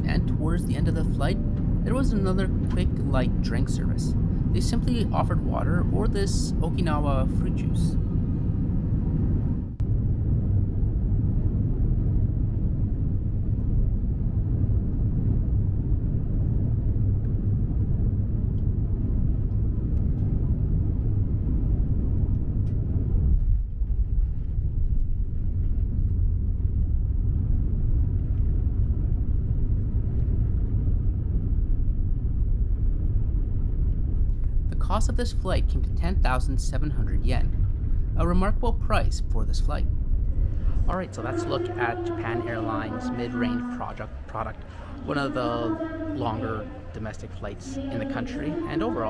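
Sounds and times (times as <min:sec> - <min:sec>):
airliner cabin rumble: 0:00.0 - 0:49.0.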